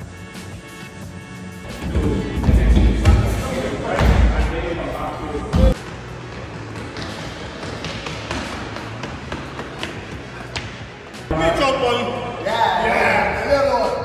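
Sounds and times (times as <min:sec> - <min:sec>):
background music: 0:00.0 - 0:14.0.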